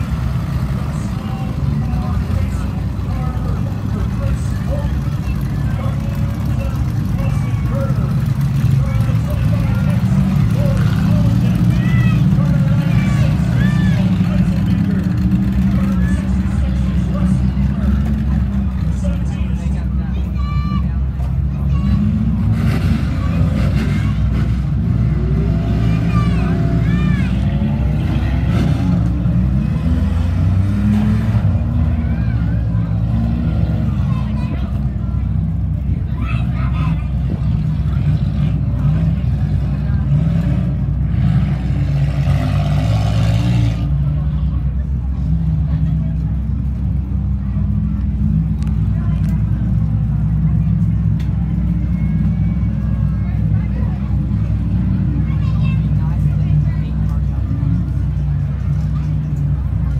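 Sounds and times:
indistinct voices: 0:00.0 - 0:59.9
race car engines revving: 0:00.0 - 0:59.9.

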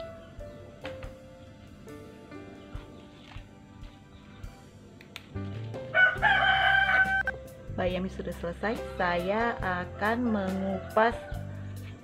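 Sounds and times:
faint background music: 0:00.0 - 0:12.0
rooster crowing: 0:05.9 - 0:07.4.

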